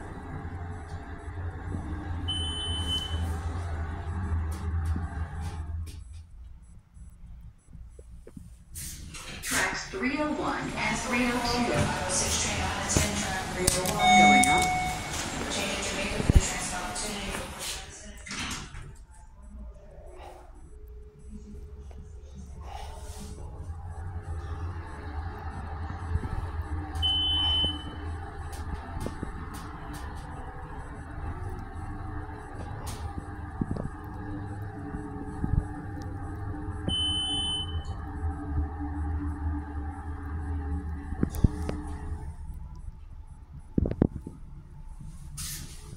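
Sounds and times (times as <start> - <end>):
elevator electronic beep: 0.0 - 8.3, 10.0 - 17.2, 19.4 - 22.6, 23.3 - 44.2
short high electronic beeps: 14.0 - 15.2.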